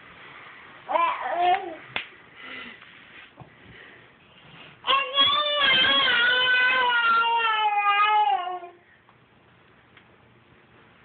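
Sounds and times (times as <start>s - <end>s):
baby babbling: 0.9s - 1.8s
baby high-pitched held vocal: 0.9s - 1.9s.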